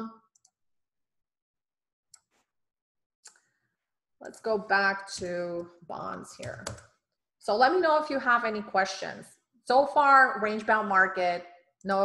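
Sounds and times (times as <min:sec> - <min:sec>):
faint computer mouse clicks: 0:03.2 - 0:03.5.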